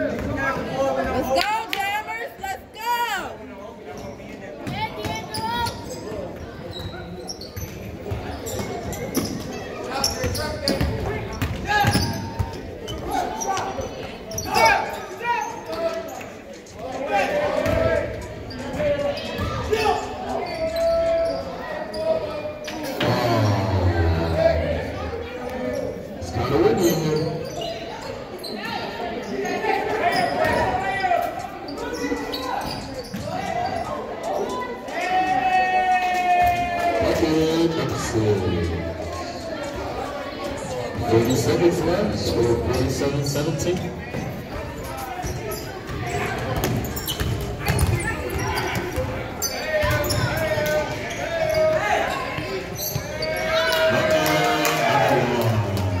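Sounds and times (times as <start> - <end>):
voices shouting and talking: 0.0 - 56.0.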